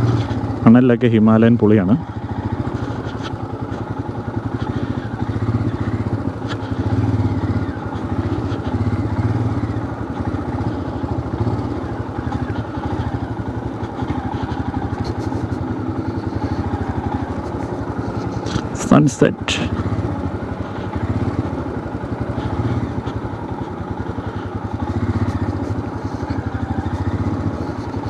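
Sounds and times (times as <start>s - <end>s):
motorcycle engine running slowly: 0.0s - 28.0s.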